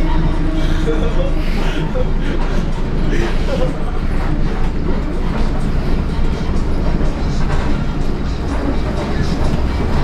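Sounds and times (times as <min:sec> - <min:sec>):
trolleybus cabin rumble: 0:00.0 - 0:10.0.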